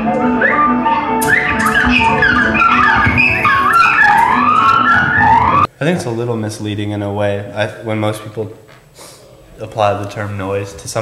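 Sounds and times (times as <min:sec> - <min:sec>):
squealing electronic pitch glides: 0:00.0 - 0:05.7.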